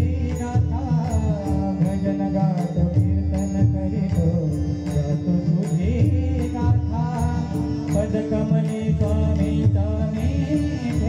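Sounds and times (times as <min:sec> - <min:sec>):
harmonium melody: 0:00.0 - 0:11.0.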